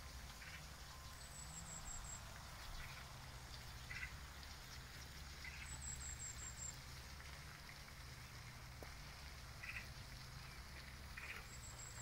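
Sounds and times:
light hiss: 0.0s - 12.0s.

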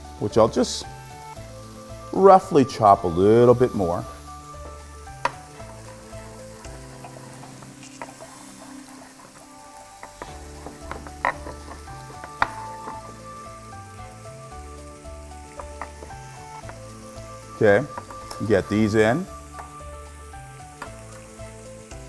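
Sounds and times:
fish sizzling in grill: 0.0s - 22.0s.

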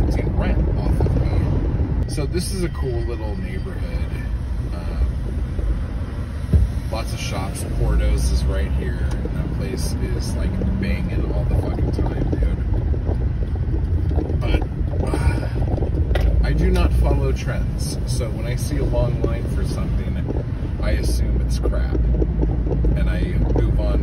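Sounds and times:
car engine and road noise: 0.0s - 24.0s.

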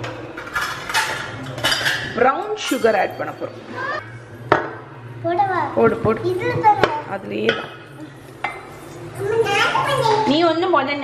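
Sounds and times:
kitchen utensils clinking and scraping: 0.0s - 4.0s.

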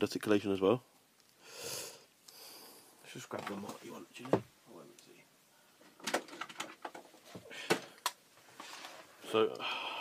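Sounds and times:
plastic figures clicking and knocking: 5.8s - 8.2s.

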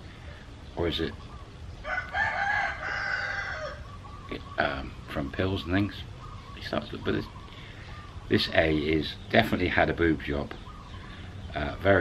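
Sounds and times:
rooster crowing: 1.8s - 4.2s.

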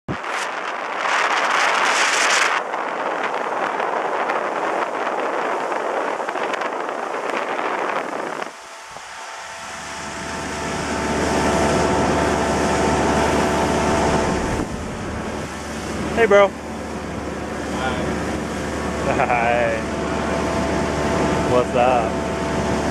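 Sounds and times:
wind on microphone: 0.0s - 22.9s
motorboat engine drone: 0.1s - 22.9s.

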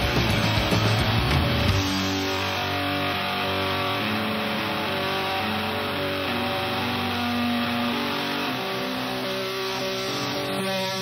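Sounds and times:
distorted electric guitar: 0.0s - 11.0s.

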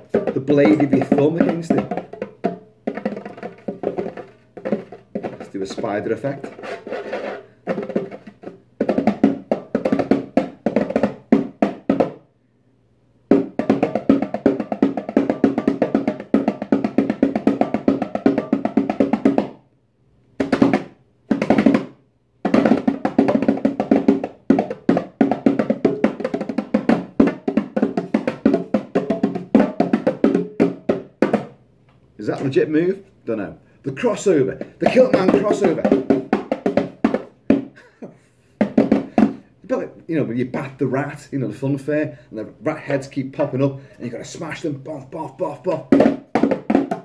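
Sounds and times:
bongos played by hand: 0.0s - 12.3s, 13.3s - 19.7s, 20.4s - 31.6s, 33.9s - 39.6s, 44.2s - 47.0s.

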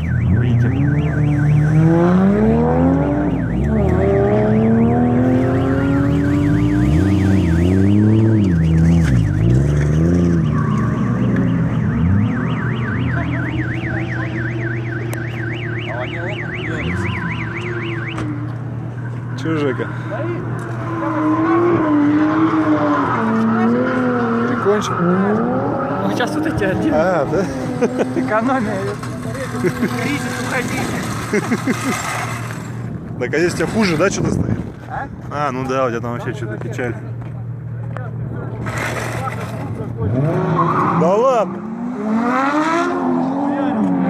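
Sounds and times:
warbling electronic alarm tone: 0.0s - 19.2s
car engines revving: 0.0s - 44.0s.

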